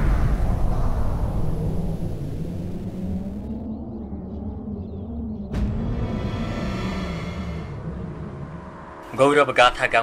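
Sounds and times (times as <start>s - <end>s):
deep rumbling boom: 0.0s - 10.0s
low drone: 0.0s - 10.0s.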